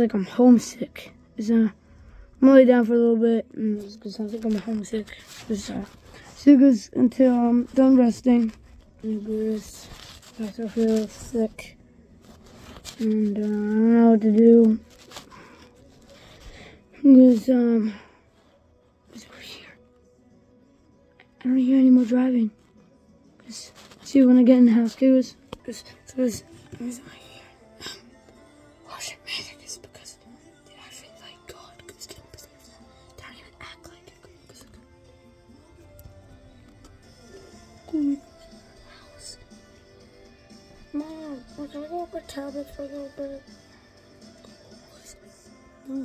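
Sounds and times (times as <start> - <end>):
quiet background music: 0.0 - 46.0
boy whispering: 2.4 - 11.8, 12.8 - 15.6, 16.9 - 18.1, 19.0 - 19.9, 23.4 - 28.2, 28.8 - 34.9, 36.7 - 39.6, 40.9 - 43.5, 44.5 - 46.0
phone rubbing on blanket: 4.1 - 16.5, 23.4 - 24.8.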